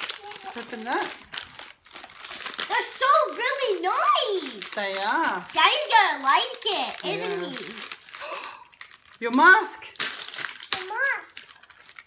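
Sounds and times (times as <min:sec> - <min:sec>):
plastic wrappers crinkling: 0:00.0 - 0:12.0.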